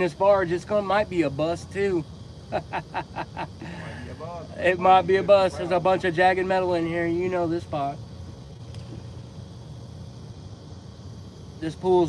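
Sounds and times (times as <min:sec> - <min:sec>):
man laughing: 0:02.5 - 0:06.4.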